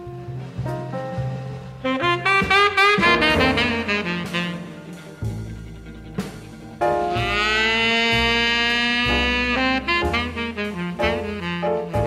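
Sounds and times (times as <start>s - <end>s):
low bass notes: 0.0s - 12.0s
horns holding loud chord: 1.8s - 10.9s.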